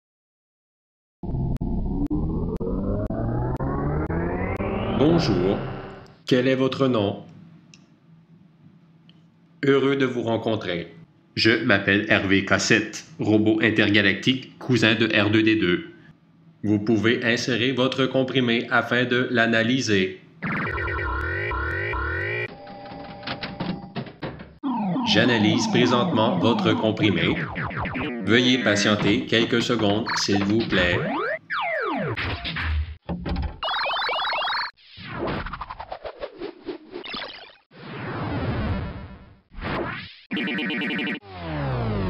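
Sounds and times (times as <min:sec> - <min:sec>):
rising electronic buzz: 0:01.2 - 0:06.1, 0:20.4 - 0:22.5, 0:24.6 - 0:28.8, 0:41.2 - 0:42.0.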